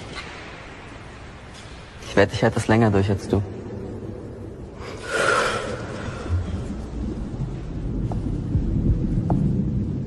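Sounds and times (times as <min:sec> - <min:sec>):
person breathing in deeply: 0:04.8 - 0:06.8
low steady rumble: 0:05.6 - 0:10.0.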